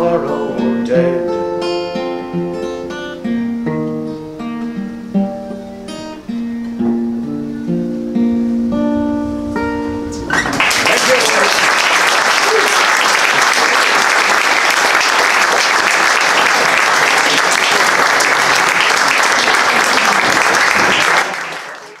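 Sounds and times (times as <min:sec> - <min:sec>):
audience applauding: 0:10.3 - 0:22.0.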